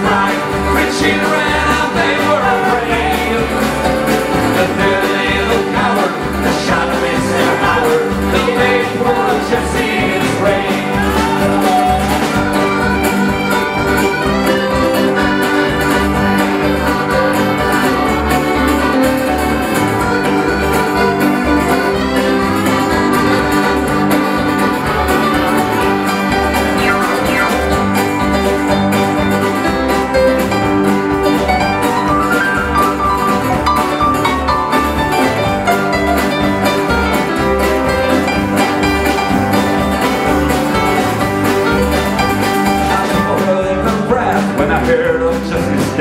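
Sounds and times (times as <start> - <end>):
fiddle: 0.0 - 43.7
accordion: 0.0 - 46.0
strummed acoustic guitars: 0.0 - 46.0
upright bass: 0.0 - 46.0.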